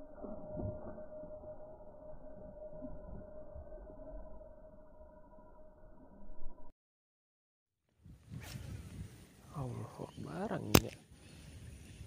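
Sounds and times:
faint outdoor background: 7.8s - 12.0s
sharp click: 10.7s - 11.0s.

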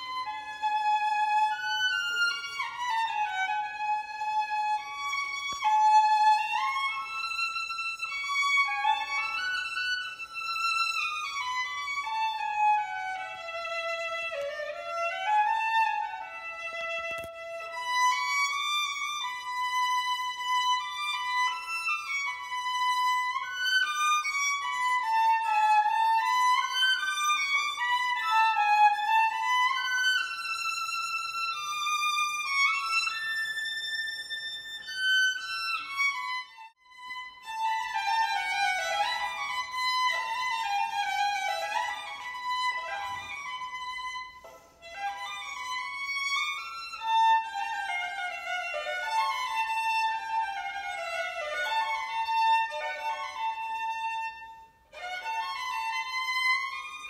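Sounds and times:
solo violin melody: 0.0s - 57.0s.

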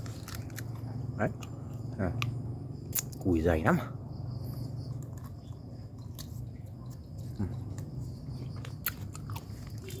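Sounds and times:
wet chewing: 0.0s - 3.2s, 4.8s - 10.0s.

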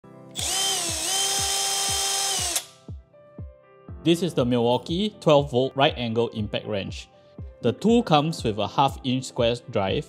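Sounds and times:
background music with steady beat: 0.0s - 10.0s
impact wrench motor whine: 0.3s - 2.8s.

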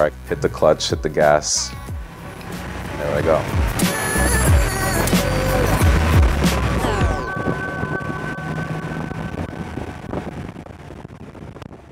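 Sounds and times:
background music: 0.0s - 10.7s
car engine running: 0.5s - 11.4s.

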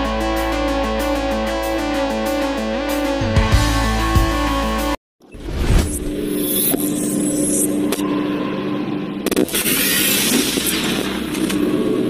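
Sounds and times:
low drone: 5.8s - 12.0s.

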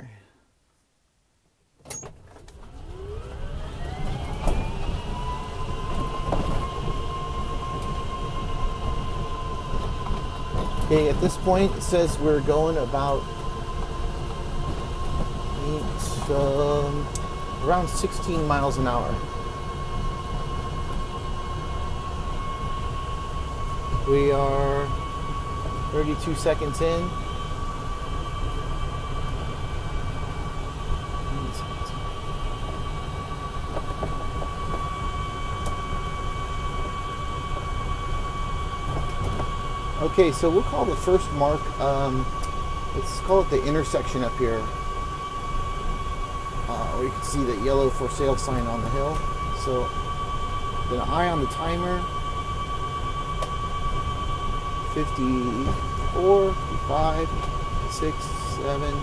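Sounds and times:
low rumble of tyres and drivetrain: 1.8s - 59.0s
thin high whine: 1.9s - 59.0s.

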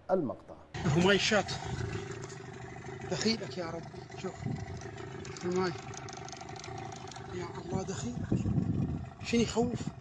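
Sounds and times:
engine running with steady drone: 0.8s - 10.0s.

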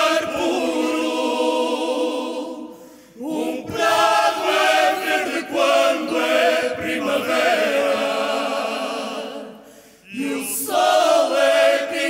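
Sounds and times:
male choir singing: 0.0s - 12.0s
woman and men singing in harmony: 0.0s - 12.0s.

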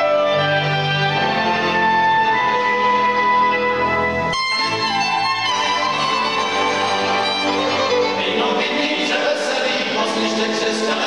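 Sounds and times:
violins cello and cimbalom: 0.0s - 11.0s
group singing: 7.9s - 11.0s.

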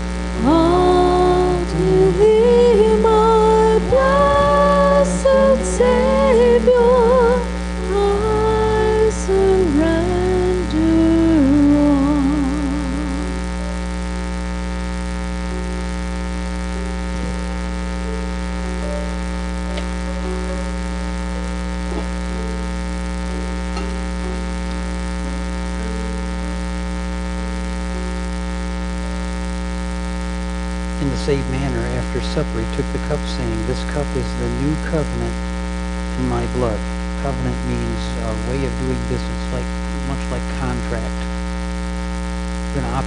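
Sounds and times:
electrical mains hum: 0.0s - 43.0s
low voice: 0.4s - 11.8s, 31.0s - 35.4s, 36.1s - 41.4s, 42.7s - 43.0s
faint soft notes: 15.4s - 28.4s.

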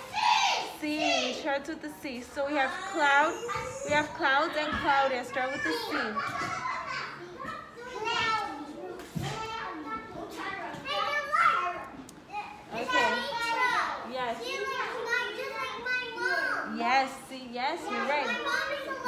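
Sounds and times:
young children talking and calling out: 0.0s - 19.0s.

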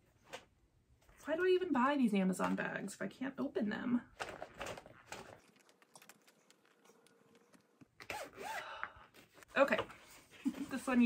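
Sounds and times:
plastic bag crinkling: 4.2s - 7.9s.

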